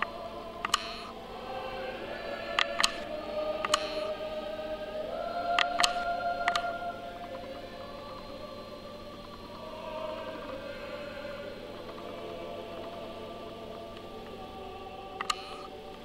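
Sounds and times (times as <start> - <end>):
sharp clicks: 0.0 - 1.2, 2.5 - 4.1, 5.5 - 7.6, 15.2 - 15.7
choral music: 0.0 - 16.0.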